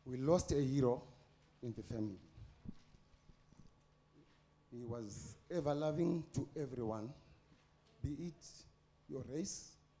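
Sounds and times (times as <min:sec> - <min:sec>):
man speaking: 0:00.1 - 0:02.3, 0:04.7 - 0:07.3, 0:08.0 - 0:09.8.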